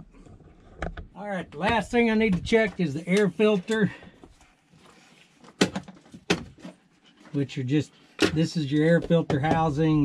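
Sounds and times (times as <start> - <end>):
quiet handling: 0.0 - 10.0.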